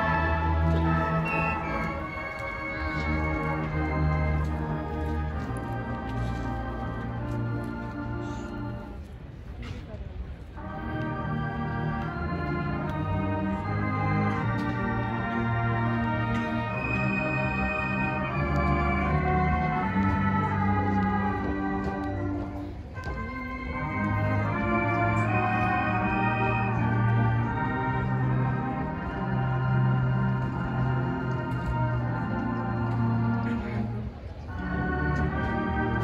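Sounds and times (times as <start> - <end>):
marching band brass chords: 0.0 - 9.0, 10.6 - 36.0.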